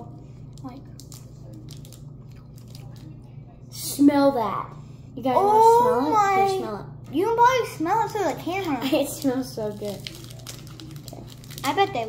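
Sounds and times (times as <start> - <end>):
low steady hum: 0.0 - 12.0
candy wrapper crinkling: 0.4 - 3.2, 8.3 - 12.0.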